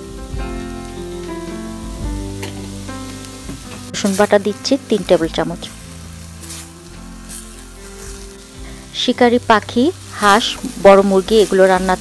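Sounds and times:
background music: 0:00.0 - 0:12.0
onions frying in oil: 0:00.0 - 0:12.0.

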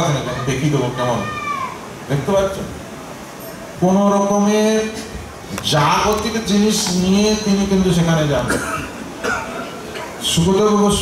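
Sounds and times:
man's voice: 0:03.8 - 0:08.8, 0:10.2 - 0:11.0.

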